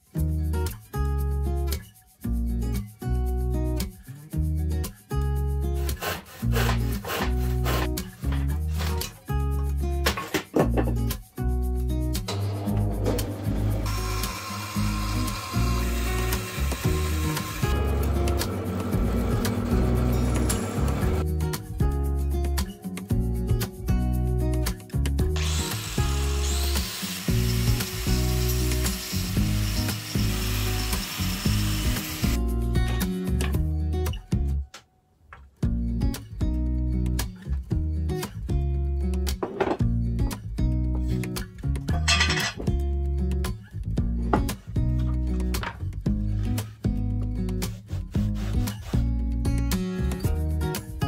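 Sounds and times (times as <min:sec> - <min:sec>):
background music held notes: 0:00.1 - 0:34.8
saw cutting wood: 0:05.8 - 0:08.0, 0:12.3 - 0:21.2, 0:25.4 - 0:32.4
angle grinder sanding wood: 0:05.8 - 0:08.1, 0:12.3 - 0:21.2, 0:25.4 - 0:32.4.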